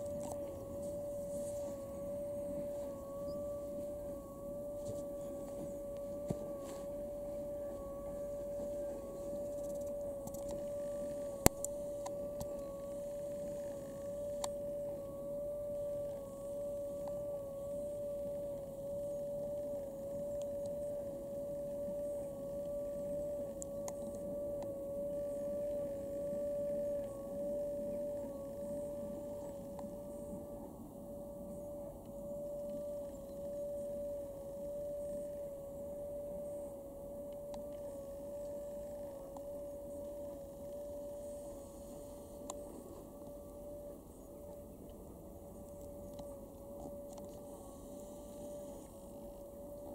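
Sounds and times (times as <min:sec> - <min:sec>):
steady wavering whine: 0:00.0 - 0:49.9.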